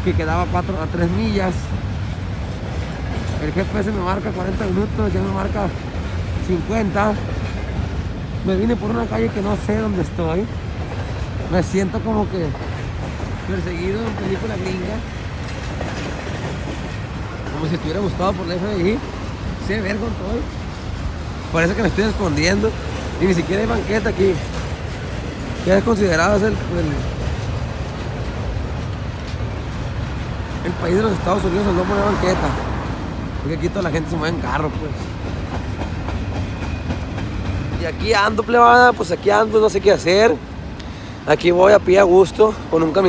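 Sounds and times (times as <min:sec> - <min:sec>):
freight train rolling past: 0:00.0 - 0:43.0.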